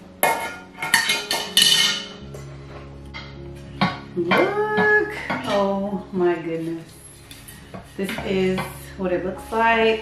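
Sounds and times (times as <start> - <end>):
metal cookware clattering: 0.2 - 2.5, 3.1 - 6.1.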